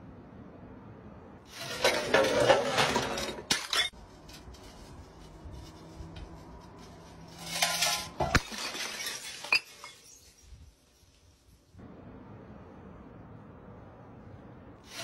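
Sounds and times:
glass bottle rolling down concrete steps: 1.5 - 4.4, 7.3 - 10.5.

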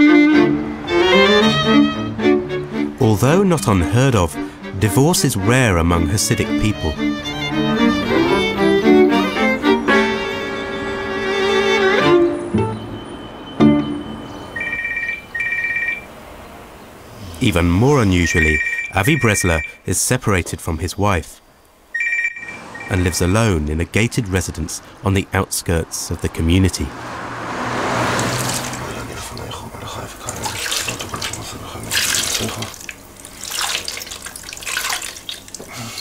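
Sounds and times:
telephone ringing: 13.4 - 16.1, 18.2 - 19.8, 21.9 - 23.0
water splashing into basin: 27.8 - 29.0, 30.2 - 35.7.

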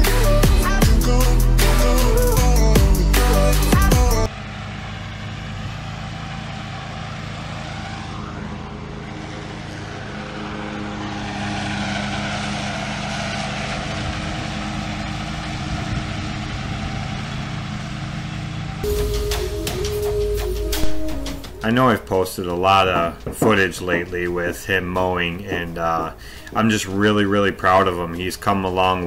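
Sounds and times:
loud music: 0.0 - 4.3, 18.8 - 24.1
riding mower engine running: 3.8 - 29.0.

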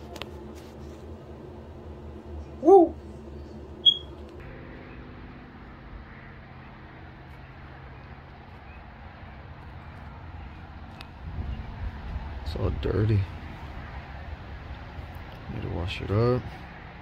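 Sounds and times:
vehicle engine humming: 0.0 - 17.0.

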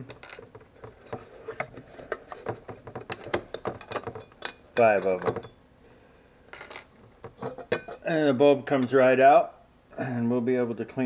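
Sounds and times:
light metal clinks and knocks: 0.0 - 5.6, 6.5 - 8.1.

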